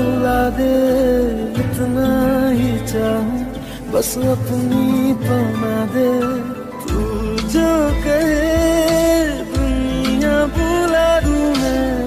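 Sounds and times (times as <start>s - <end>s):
low beat: 6.9s - 12.0s.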